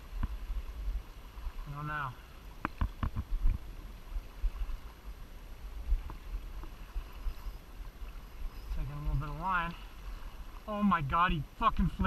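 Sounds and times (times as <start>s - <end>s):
river current rushing: 0.0s - 12.0s
wind rumble on microphone: 2.6s - 9.4s.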